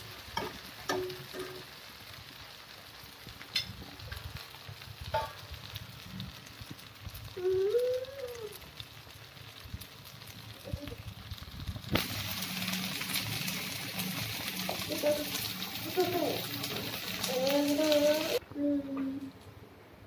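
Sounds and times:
light frying sizzle: 0.0 - 19.5.

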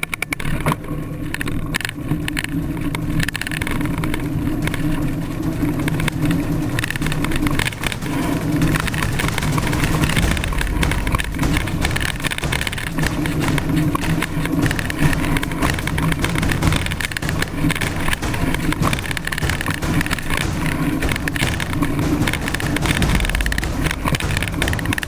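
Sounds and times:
bike rattling: 0.0 - 25.0
tyres crunching on loose ground: 7.4 - 25.0.

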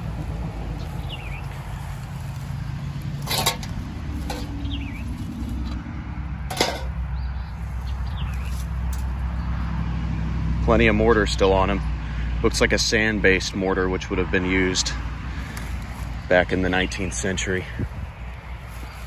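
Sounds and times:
low steady rumble: 0.0 - 18.7.

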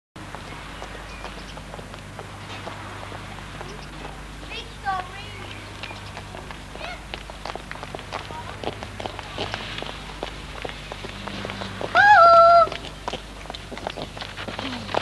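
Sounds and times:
footsteps on pavement: 0.2 - 15.0
loud high drawn-out call: 11.4 - 12.8.

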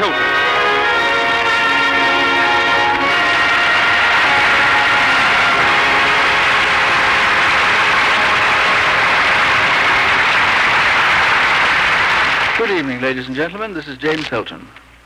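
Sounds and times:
music: 0.0 - 10.6
audience applauding: 0.0 - 13.5.

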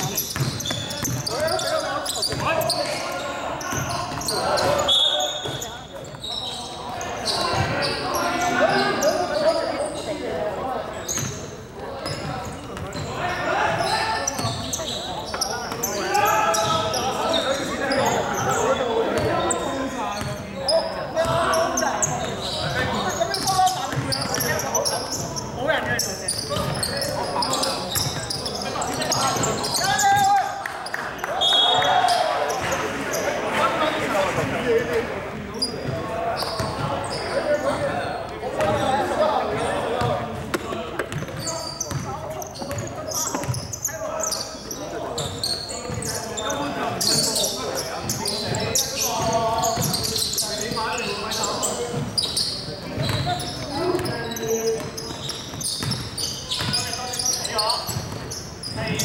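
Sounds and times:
players calling out: 0.0 - 59.0
basketball bouncing on wooden court: 0.2 - 1.4, 2.3 - 3.0, 23.4 - 24.6, 40.0 - 43.6, 49.2 - 50.1, 52.9 - 54.1, 54.7 - 56.9.

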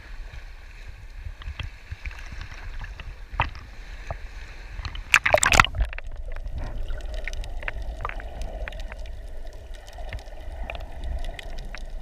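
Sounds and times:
low rumble of moving water: 0.0 - 12.0
waves lapping against camera housing: 4.8 - 9.0
sharp water splash: 5.0 - 7.3.

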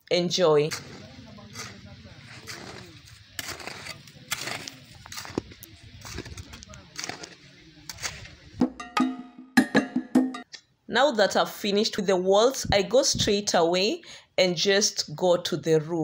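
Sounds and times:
digging tool scraping soil: 0.1 - 8.5.

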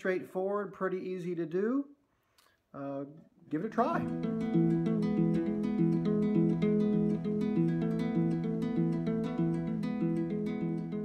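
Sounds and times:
fingerpicked guitar: 3.8 - 11.0.

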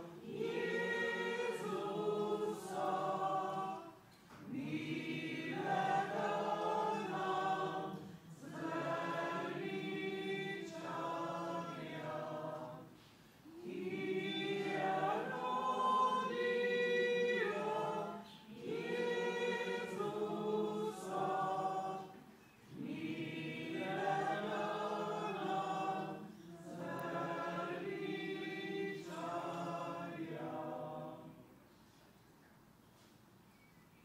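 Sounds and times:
choir singing a hymn: 0.0 - 31.6.

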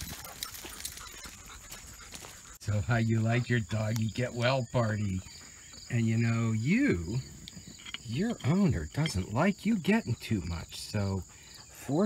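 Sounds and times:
footsteps on gravel: 0.0 - 2.8.

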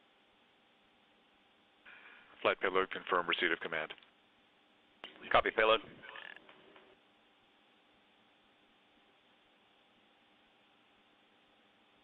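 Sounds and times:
faint broadcast hiss: 0.0 - 12.0.

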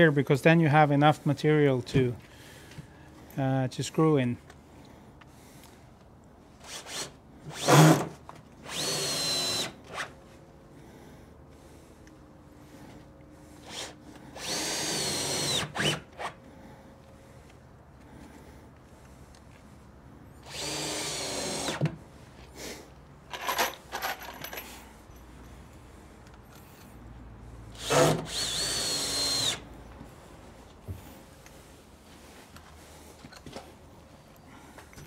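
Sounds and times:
cordless drill driving screws: 6.6 - 10.2, 13.6 - 16.4, 20.4 - 22.0, 27.7 - 29.7.

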